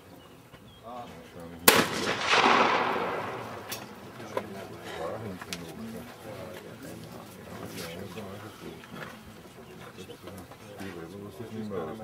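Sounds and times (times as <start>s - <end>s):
shotgun shot: 1.7s - 4.2s
faint distant cracks: 1.7s - 4.7s.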